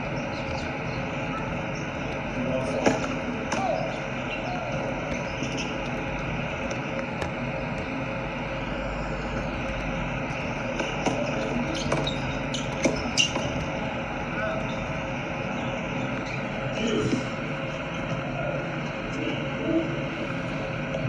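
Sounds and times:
steady background hum: 0:00.0 - 0:21.0.

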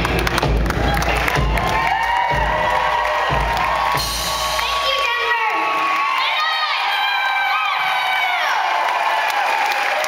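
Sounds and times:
live rock band playing: 0:00.0 - 0:05.6
audience cheering and whooping: 0:00.0 - 0:10.0.

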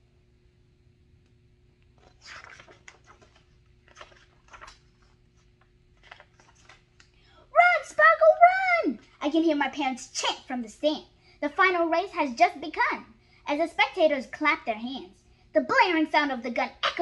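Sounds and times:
book pages rustling: 0:01.9 - 0:07.1
child's voice: 0:07.5 - 0:17.0.

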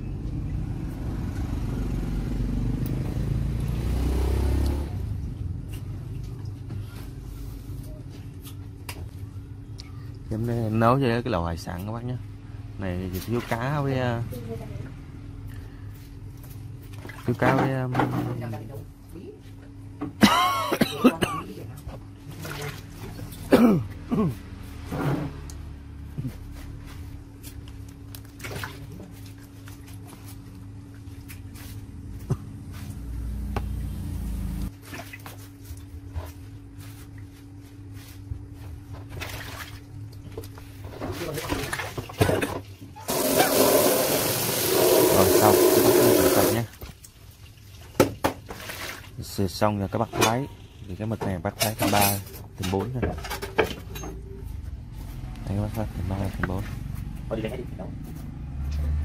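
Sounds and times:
running water splashing into basin: 0:43.1 - 0:47.8.

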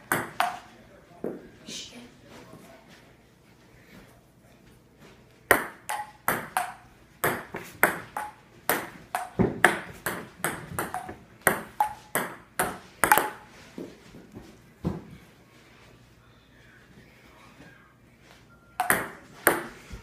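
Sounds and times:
ping pong ball clicking: 0:05.5 - 0:13.4, 0:18.8 - 0:19.7.

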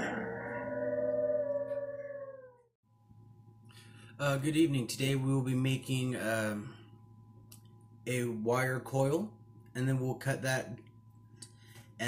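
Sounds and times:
wolves howling: 0:00.0 - 0:02.8.

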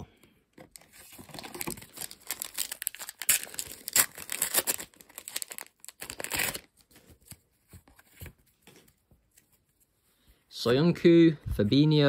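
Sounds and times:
plastic wrapper tearing and crinkling: 0:00.7 - 0:07.4.

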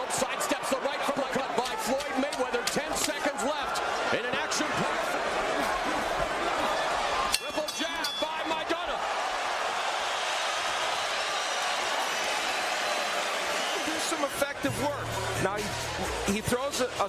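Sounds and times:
crowd voices din: 0:00.0 - 0:09.5.

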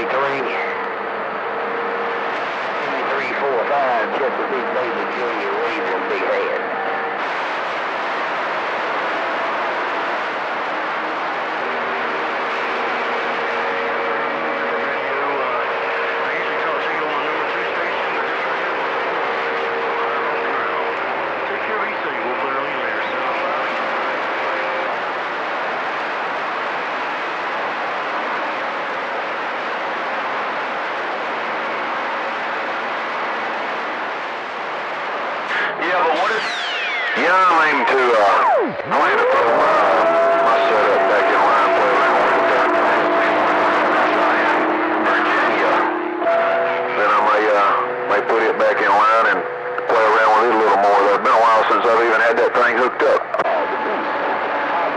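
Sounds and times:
faint unintelligible radio voices: 0:00.0 - 0:26.5, 0:35.0 - 0:54.9
radio static and hiss: 0:00.0 - 0:54.9
steady whistling tones: 0:34.5 - 0:52.0.

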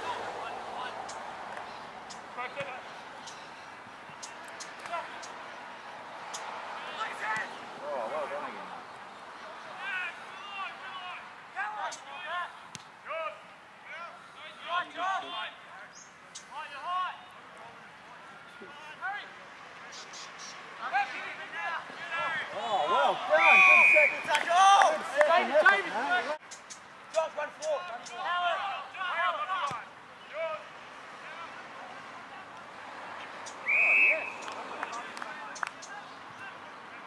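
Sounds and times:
people shouting and calling out: 0:06.7 - 0:19.5, 0:20.8 - 0:26.4, 0:27.1 - 0:37.0
whistle blast: 0:23.4 - 0:24.4, 0:33.6 - 0:34.5.

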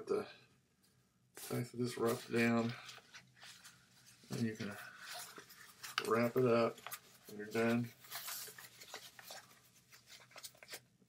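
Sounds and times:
soft scrapes: 0:01.4 - 0:10.8
fabric case rustling: 0:02.1 - 0:10.8.

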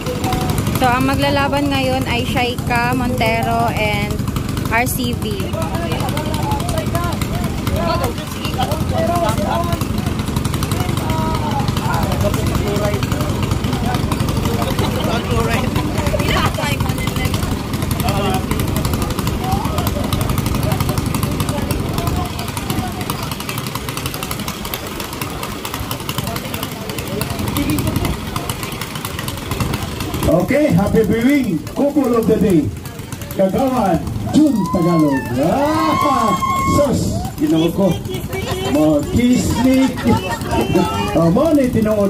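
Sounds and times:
boat engines idling: 0:00.0 - 0:42.0
crowd voices: 0:00.0 - 0:42.0.

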